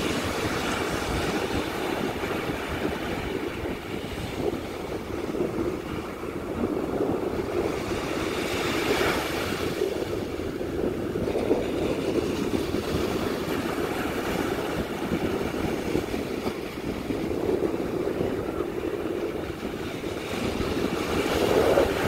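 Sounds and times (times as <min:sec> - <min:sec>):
ocean surf breaking: 0:00.0 - 0:22.0
wind rumble on microphone: 0:00.0 - 0:22.0.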